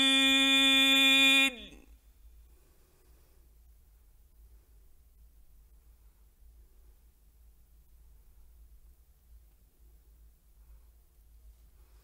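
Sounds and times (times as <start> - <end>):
man reciting in long note: 0.0 - 1.9.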